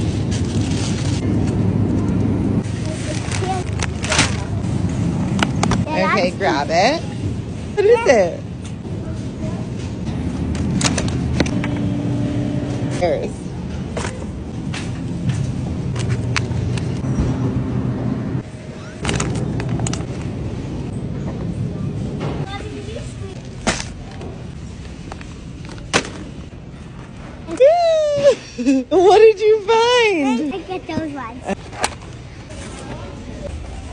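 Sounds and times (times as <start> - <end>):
supermarket background hum: 0.0 - 33.9.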